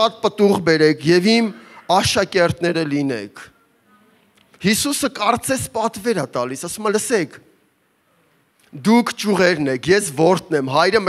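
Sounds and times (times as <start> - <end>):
man speaking into a microphone: 0.0 - 3.6, 4.5 - 7.6, 8.6 - 11.0.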